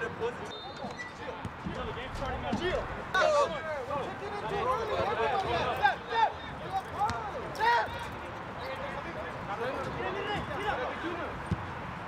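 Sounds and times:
players shouting: 2.5s - 8.9s.

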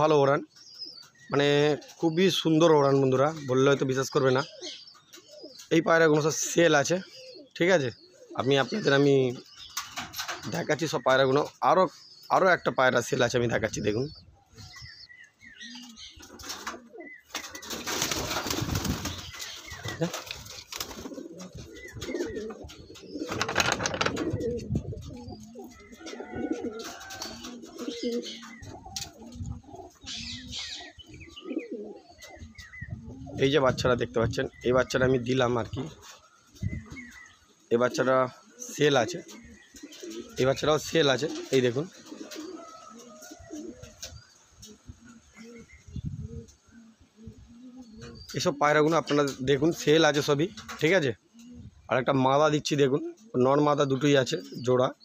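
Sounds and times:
pigeons cooing: 0.0s - 55.0s
wings flapping: 16.2s - 25.2s.

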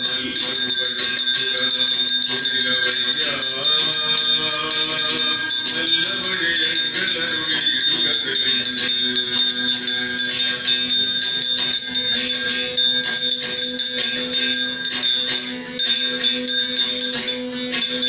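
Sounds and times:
fast jingling percussion: 0.0s - 18.0s
steady ringing tones: 0.0s - 18.0s.

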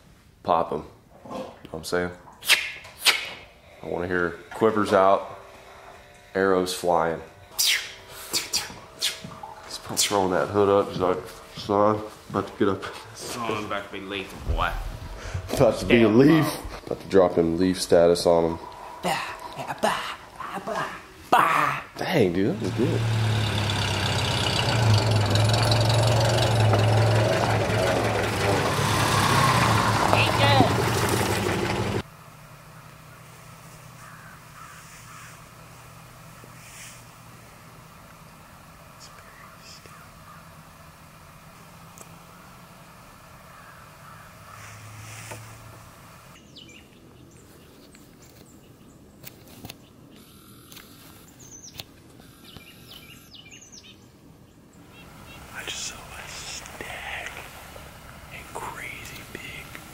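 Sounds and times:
vehicle engine humming: 2.8s - 49.2s, 49.8s - 59.9s
faint bird calls: 32.6s - 35.6s, 36.5s - 37.1s, 39.0s - 41.0s, 43.4s - 45.4s, 49.8s - 57.5s.

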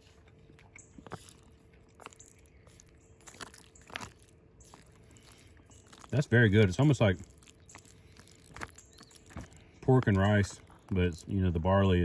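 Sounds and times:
person chewing: 0.0s - 11.1s
soft mouth clicks and smacks: 0.2s - 6.2s, 7.2s - 9.9s.

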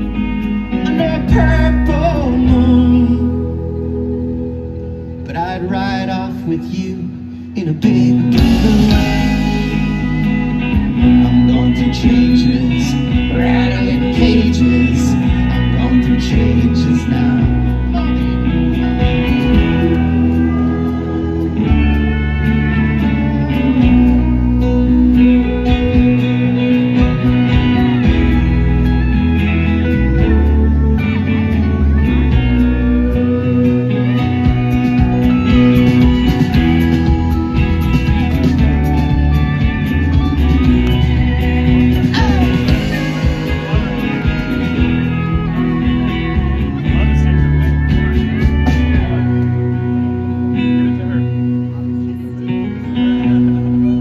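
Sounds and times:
live folk-rock band: 0.0s - 54.0s
strummed acoustic guitar: 7.6s - 54.0s.

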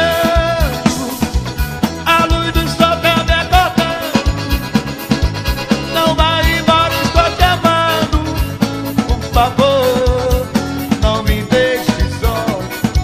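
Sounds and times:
live folk band playing: 0.0s - 13.0s
piano accordion melody: 0.0s - 13.0s.

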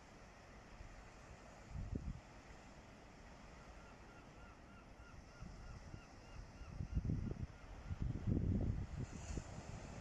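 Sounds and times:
wind buffeting microphone: 1.7s - 2.3s, 5.4s - 10.0s.

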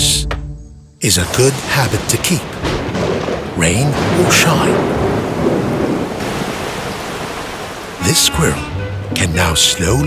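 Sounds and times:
heavy rain falling: 1.0s - 9.6s
low thunder rumble: 1.6s - 8.0s.

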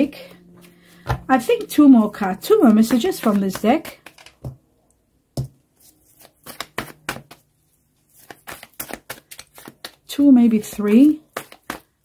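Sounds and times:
cards clicking and tapping on table: 2.6s - 4.6s.

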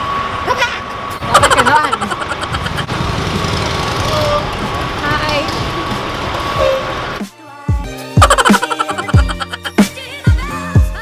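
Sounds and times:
vehicle engine rumbling: 0.0s - 7.2s.

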